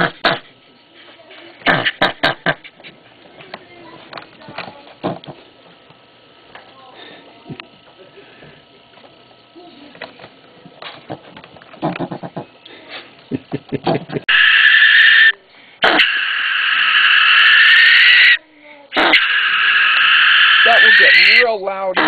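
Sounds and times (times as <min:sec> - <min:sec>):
possum screeching: 0:14.3 - 0:22.0.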